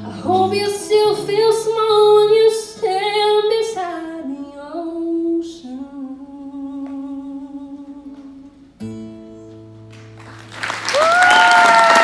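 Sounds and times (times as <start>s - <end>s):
woman singing: 0.0s - 8.7s.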